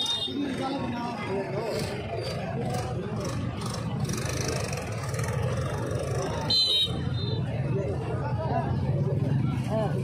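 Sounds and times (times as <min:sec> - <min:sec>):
murmur of large crowd: 0:00.0 - 0:10.0.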